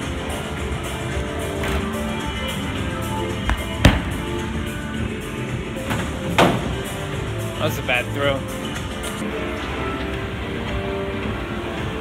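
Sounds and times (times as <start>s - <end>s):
background music: 0.0s - 12.0s
bowling ball hitting lane: 3.4s - 4.4s.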